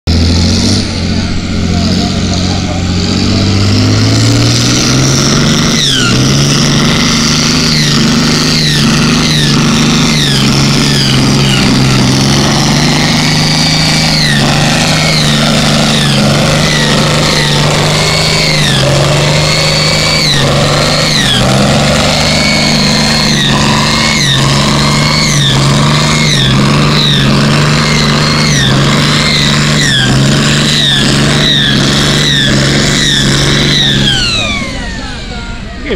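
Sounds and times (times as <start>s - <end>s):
tractor diesel engine at full throttle: 0.0s - 35.9s.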